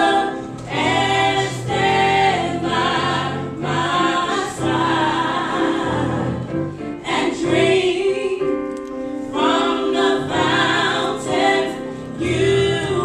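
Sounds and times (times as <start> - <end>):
women singing in harmony: 0.0 - 13.0.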